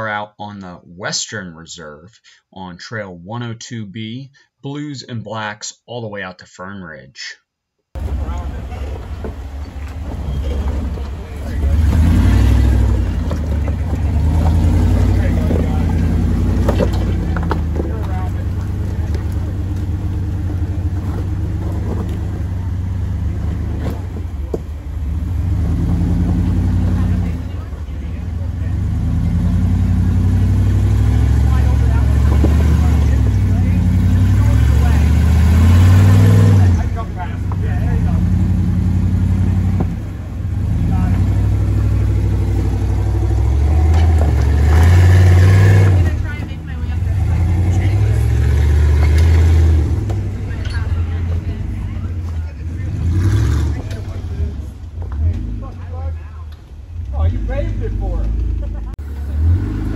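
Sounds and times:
buggy engine revving: 8.0s - 59.9s.

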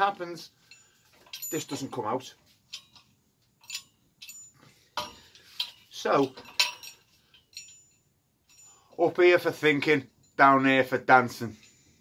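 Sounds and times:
metal clinks with ringing: 0.6s - 12.0s.

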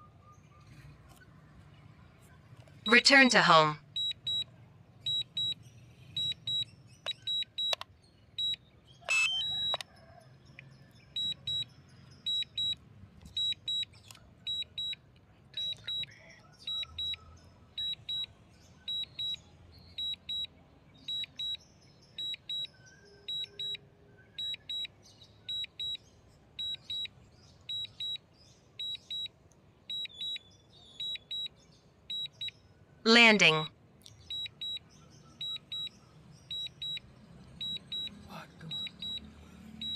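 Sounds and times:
sharp clicks: 7.0s - 7.9s
short high electronic beeps: 9.1s - 9.8s.

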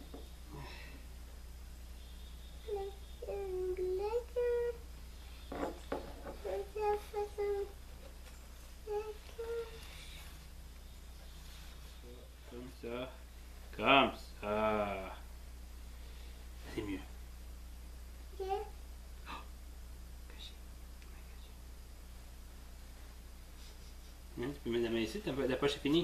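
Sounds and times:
low electrical hum: 0.0s - 26.0s
faint whisper: 20.2s - 21.6s.

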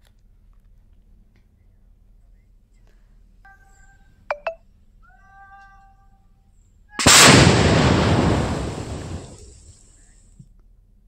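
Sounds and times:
loud explosion blast: 7.0s - 9.6s
sharp cracks: 7.0s - 9.7s.

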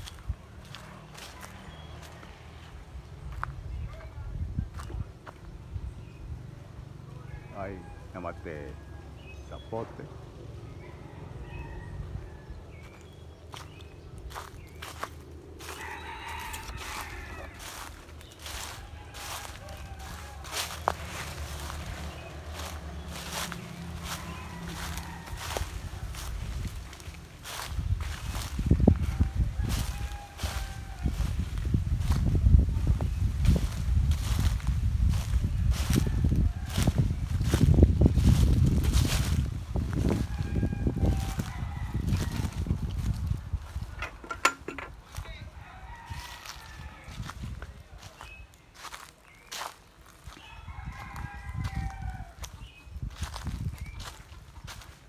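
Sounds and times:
footsteps crunching dry leaves: 0.0s - 5.6s, 12.7s - 44.2s, 44.9s - 55.0s.

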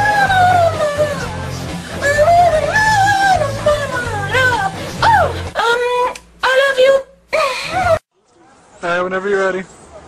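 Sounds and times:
woman singing in gliding notes: 0.0s - 1.4s
backing music: 0.0s - 5.6s.

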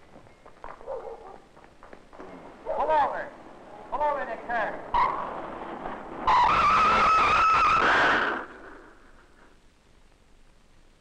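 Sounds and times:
car tyres screeching: 3.4s - 9.5s.

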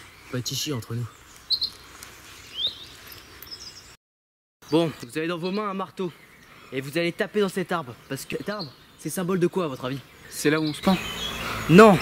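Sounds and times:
bird chirp: 0.0s - 4.0s, 4.6s - 12.0s.

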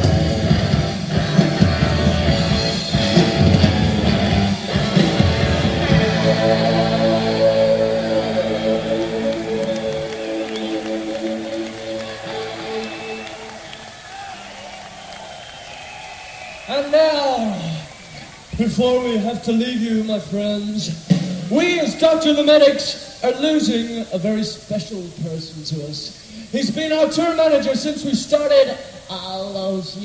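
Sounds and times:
rock band playing: 0.0s - 13.8s.

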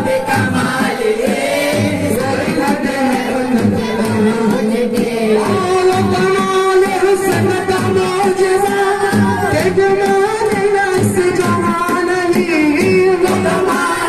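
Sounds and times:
men singing in unison: 0.0s - 14.0s
steady rhythmic beat: 0.0s - 14.0s.

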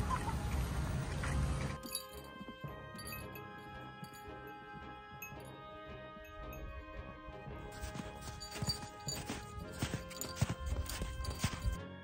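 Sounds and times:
background music sustained tones: 0.0s - 12.0s.

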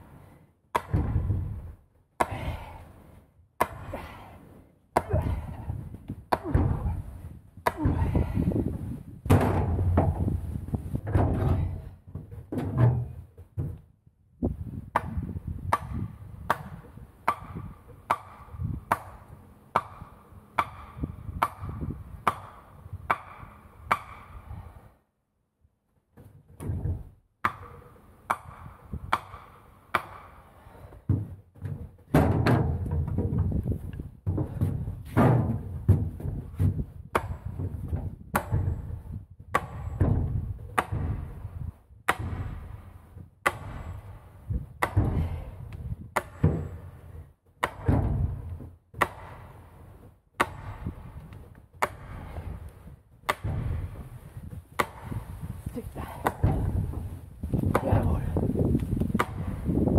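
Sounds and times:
hammer driving wooden stake: 0.7s - 2.8s, 3.6s - 4.2s, 5.0s - 13.8s, 14.9s - 24.6s, 26.2s - 47.0s, 47.6s - 59.9s.

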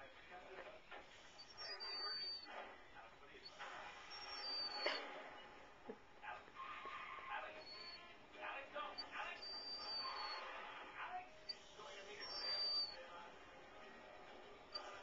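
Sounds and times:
dog whining faintly: 1.1s - 2.5s, 3.4s - 5.4s, 6.2s - 8.2s, 8.9s - 10.6s, 11.4s - 13.1s, 14.7s - 15.0s.

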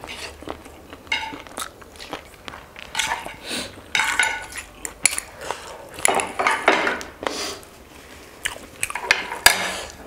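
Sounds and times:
cutlery clinking on ceramic plates: 1.1s - 1.4s, 2.9s - 4.6s, 6.0s - 7.0s.

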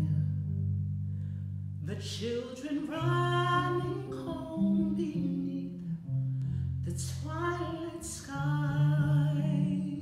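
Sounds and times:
woman singing: 0.0s - 0.6s, 1.8s - 6.1s, 6.8s - 10.0s
electric bass low notes: 0.0s - 10.0s.

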